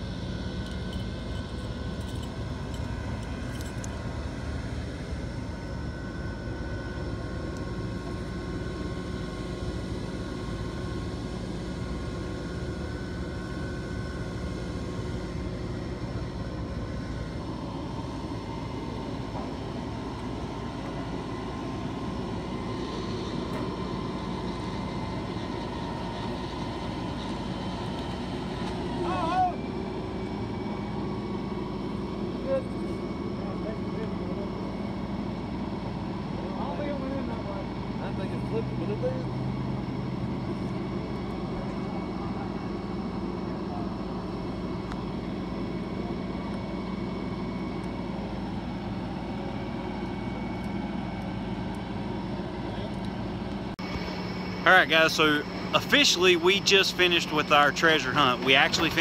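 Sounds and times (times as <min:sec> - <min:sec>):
tow truck engine droning: 0:00.0 - 0:59.0.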